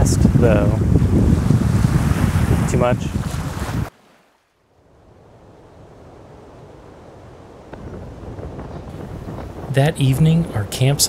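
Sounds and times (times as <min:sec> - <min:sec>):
wind buffeting microphone: 0:00.0 - 0:03.9, 0:04.8 - 0:11.0
faint steady rushing noise: 0:04.8 - 0:11.0.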